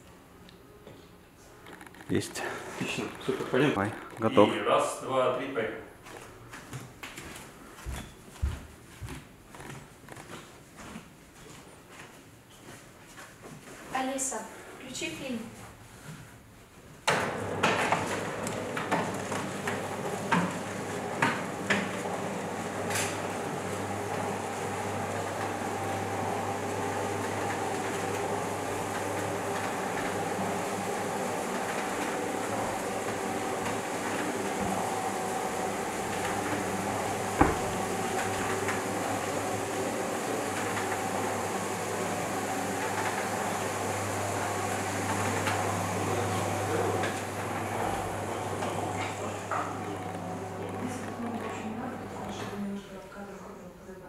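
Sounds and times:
steady mechanical hum: 0:00.0 - 0:54.0.

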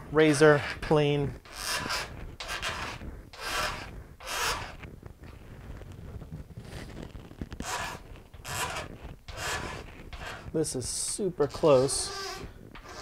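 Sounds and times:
razor blade scraping wood: 0:00.3 - 0:04.8, 0:07.6 - 0:10.5, 0:11.4 - 0:13.0.

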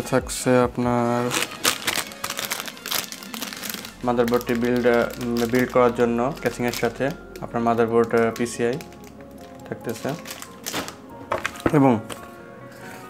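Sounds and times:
plastic packaging crinkling: 0:01.0 - 0:13.0
person speaking: 0:03.3 - 0:10.6.

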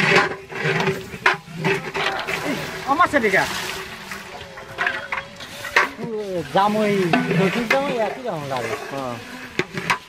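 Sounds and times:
metal cookware scraping: 0:00.0 - 0:10.0.

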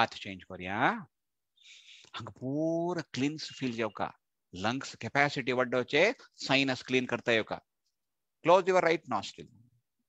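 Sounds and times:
man breathing into microphone: 0:01.6 - 0:02.2
man speaking: 0:02.1 - 0:09.7.

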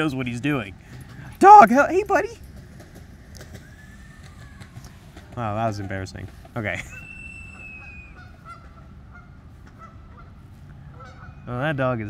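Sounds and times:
geese honking: 0:01.1 - 0:02.4, 0:03.6 - 0:11.8.

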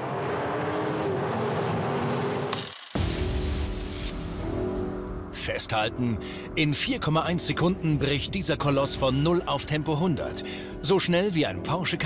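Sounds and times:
music with steady bass: 0:03.0 - 0:11.4.

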